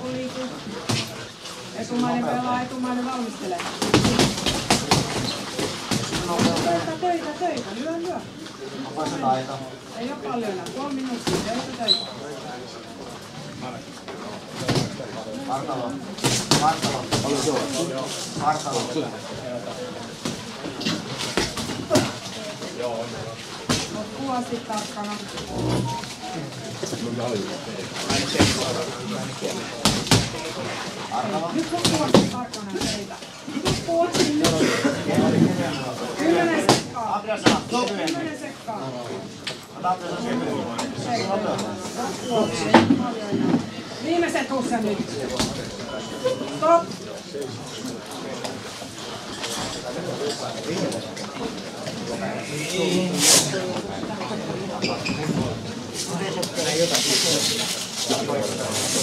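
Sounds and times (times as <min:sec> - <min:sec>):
mixed talk of people: 0:00.0 - 0:59.0
footwork on ring canvas: 0:03.7 - 0:07.0.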